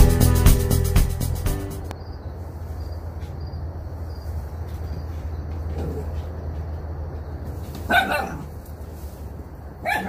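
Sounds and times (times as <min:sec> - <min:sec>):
dog barking: 0:07.8 - 0:08.5.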